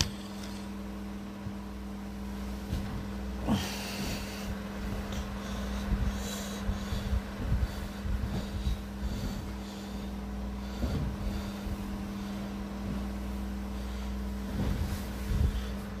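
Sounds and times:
steady low hum: 0:00.0 - 0:16.0.

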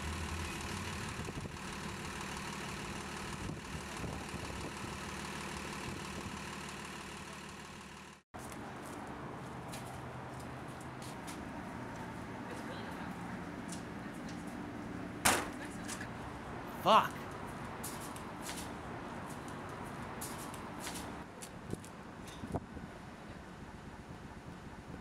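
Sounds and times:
sharp knock: 0:15.2 - 0:15.6
man exclaiming: 0:16.7 - 0:17.2.

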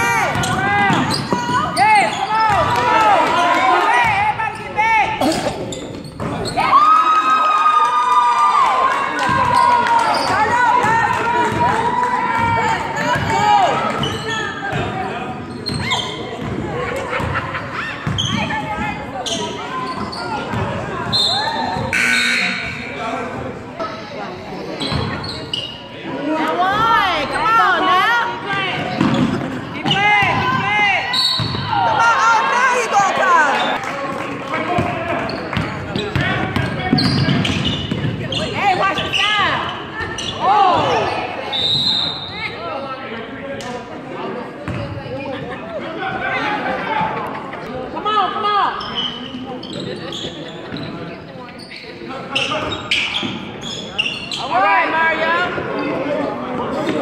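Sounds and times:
sneakers squeaking: 0:00.1 - 0:02.8, 0:04.0 - 0:06.7, 0:09.3 - 0:11.8, 0:12.4 - 0:24.0, 0:24.6 - 0:26.1, 0:26.7 - 0:32.0, 0:34.7 - 0:42.6, 0:44.4 - 0:45.5, 0:48.6 - 0:55.7
basketball bouncing on wooden floor: 0:35.6 - 0:38.2, 0:44.6 - 0:44.8.

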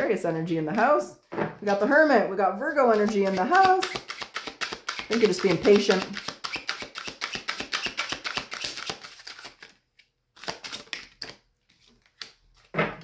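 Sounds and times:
cards being shuffled: 0:02.9 - 0:12.7.

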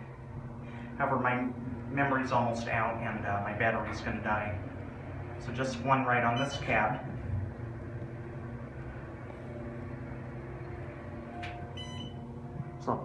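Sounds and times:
elevator humming: 0:00.0 - 0:13.0
short beep tone: 0:11.8 - 0:12.2.

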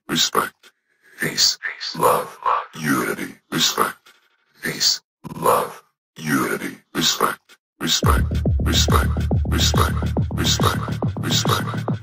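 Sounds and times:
low voice sample bursts: 0:01.1 - 0:04.0, 0:06.2 - 0:12.0.

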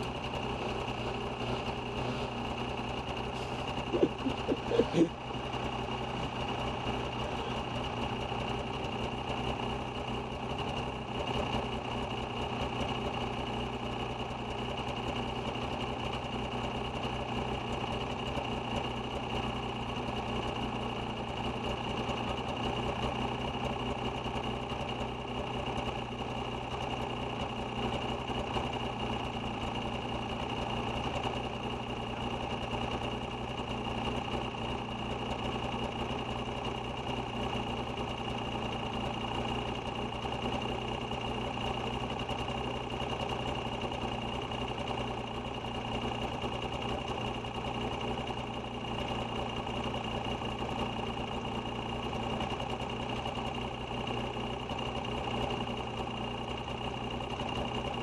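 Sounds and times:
snowmobile engine running: 0:00.0 - 0:58.0.

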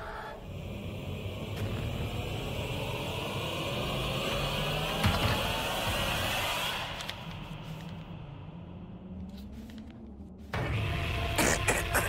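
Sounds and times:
low background score: 0:00.0 - 0:12.0.

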